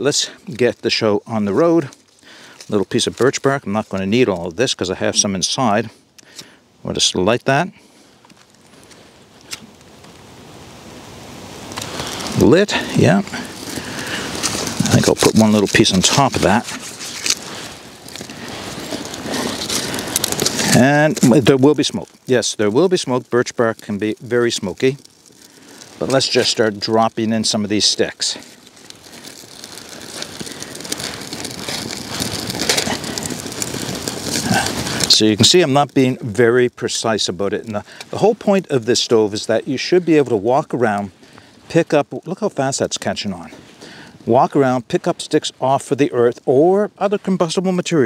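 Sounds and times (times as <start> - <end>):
soft flame hiss: 0.0 - 48.0
wood fire crackling: 0.0 - 48.0.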